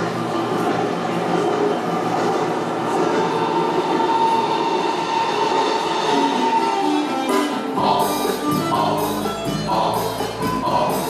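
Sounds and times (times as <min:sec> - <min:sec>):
train rumbling on rails: 0:00.0 - 0:11.0.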